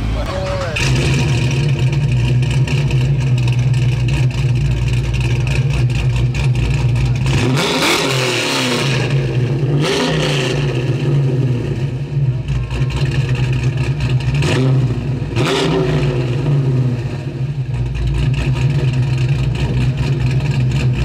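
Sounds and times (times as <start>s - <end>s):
car engine running: 0.0s - 21.0s.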